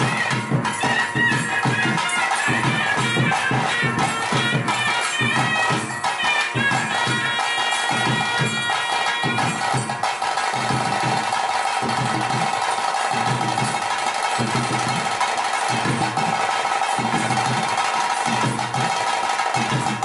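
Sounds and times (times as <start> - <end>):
drums beating steady rhythm: 0.0 - 20.0.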